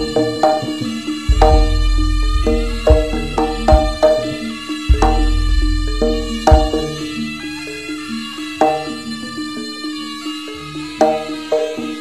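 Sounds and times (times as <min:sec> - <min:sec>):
drums: 0:00.0 - 0:07.1
gamelan melody: 0:00.0 - 0:12.0
loud struck accents: 0:01.3 - 0:07.0.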